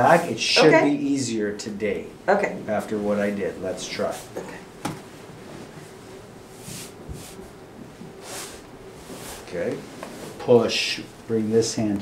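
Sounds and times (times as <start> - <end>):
clothing rustling on vinyl table: 4.0 - 10.6.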